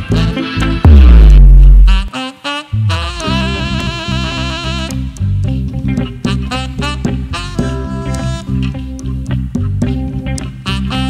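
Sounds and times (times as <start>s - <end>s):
bass and drums: 0.0s - 2.1s, 2.8s - 11.0s
saxophone with vibrato: 0.0s - 5.6s, 6.2s - 8.9s, 10.6s - 11.0s
heavy low band accent: 0.0s - 11.0s.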